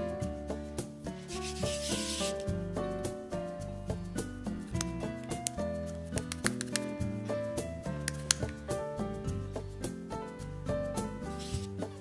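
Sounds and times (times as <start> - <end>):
background music: 0.0 - 12.0
hand rubbing flour on board: 1.3 - 2.5, 11.2 - 12.0.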